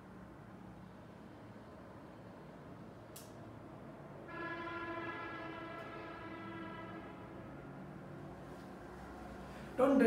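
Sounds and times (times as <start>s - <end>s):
distant horn long note: 4.3s - 7.6s.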